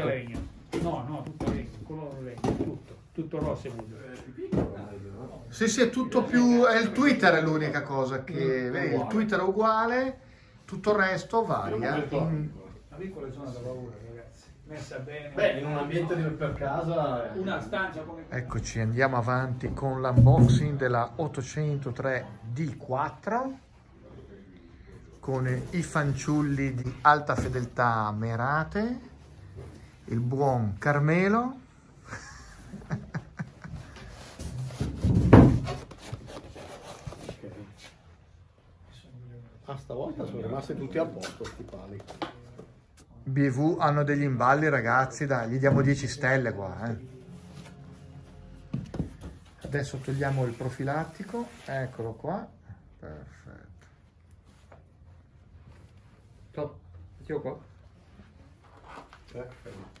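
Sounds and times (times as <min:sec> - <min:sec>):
man speaking: 0:00.0 - 0:29.2.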